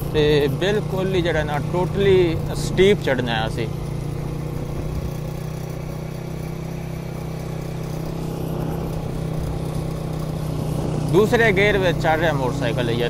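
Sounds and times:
motorcycle engine humming: 0.0s - 13.0s.

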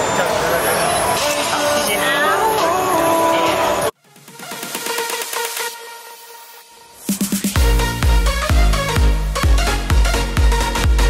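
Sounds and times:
people's voices: 0.0s - 3.9s
music playing: 0.4s - 11.0s.

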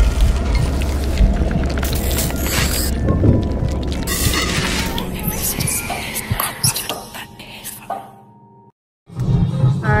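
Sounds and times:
person whispering: 4.9s - 8.1s.

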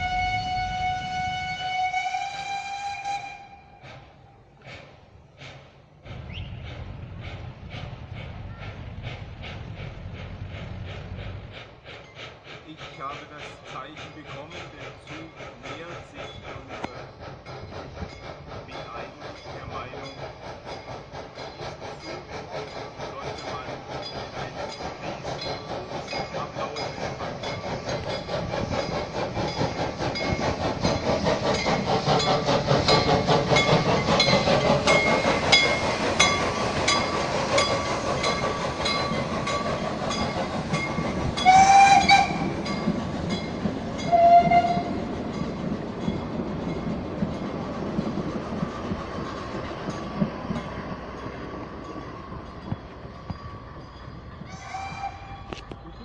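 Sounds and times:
steam whistle blasts: 0.0s - 4.1s, 41.4s - 42.6s, 44.0s - 45.0s, 54.5s - 55.6s
steam locomotive chuffing: 0.0s - 56.0s
train coaches rolling by: 0.0s - 56.0s.

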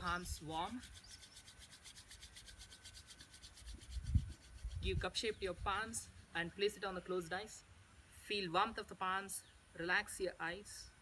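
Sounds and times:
hands rubbing together: 0.0s - 6.4s.

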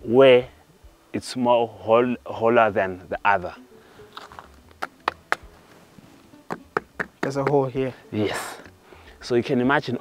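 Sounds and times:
stone knocking on hollow rock: 4.8s - 5.6s, 6.4s - 7.7s.

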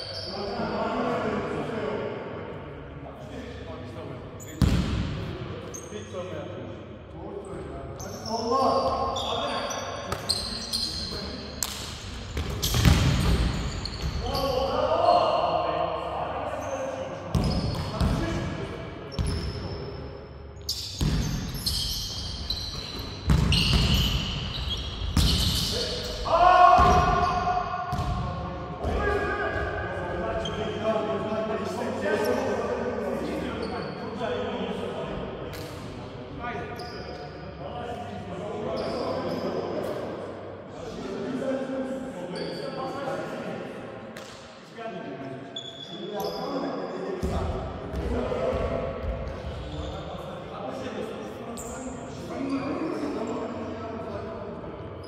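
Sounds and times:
players' voices: 0.0s - 20.5s, 23.4s - 55.0s.

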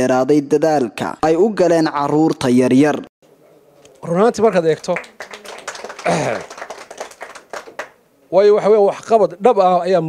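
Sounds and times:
people clapping: 3.8s - 8.0s
man speaking into a microphone: 4.0s - 5.1s, 8.3s - 10.0s.

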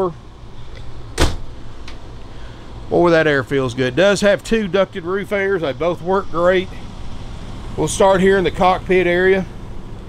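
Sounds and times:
air conditioner running: 0.0s - 10.0s
sharp thump: 1.2s - 1.5s.

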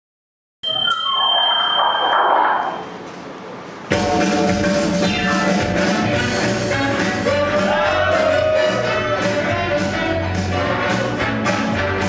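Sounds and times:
bell-like ding ringing: 0.6s - 3.0s
music: 3.9s - 12.0s.

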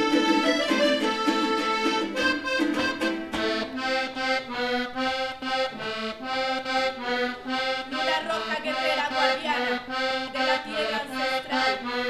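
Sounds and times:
button accordion playing chords: 0.0s - 12.0s.

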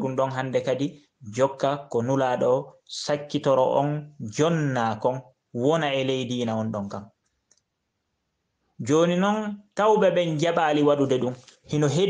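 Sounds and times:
man lecturing: 0.0s - 7.1s, 8.8s - 12.0s.

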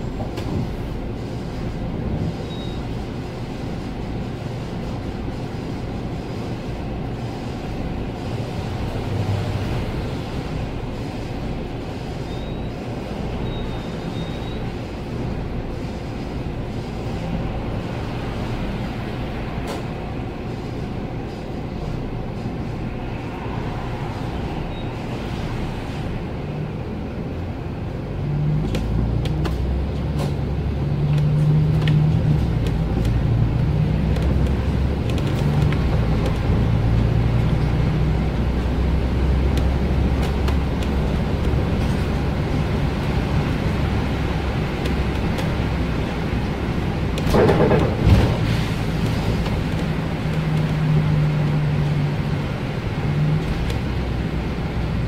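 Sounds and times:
bus diesel engine running: 0.0s - 55.0s
tyres on wet road: 0.0s - 55.0s.

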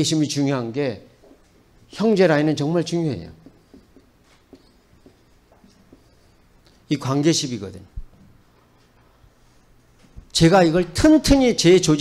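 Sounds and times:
man speaking: 1.9s - 3.4s, 6.9s - 8.0s, 10.3s - 12.0s
marker writing on whiteboard: 3.3s - 6.5s.

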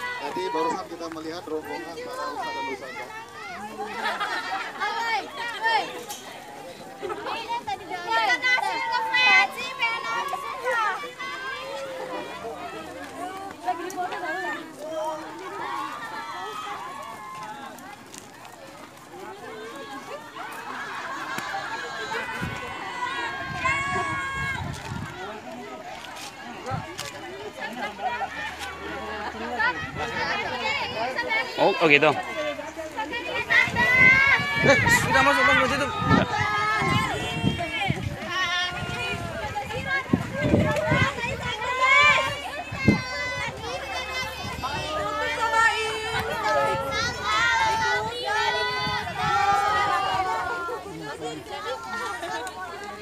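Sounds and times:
group chatter outdoors: 0.0s - 53.0s.

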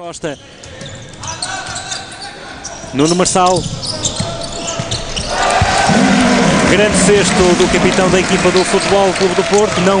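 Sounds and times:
reverberant sports hall noise: 0.0s - 10.0s.

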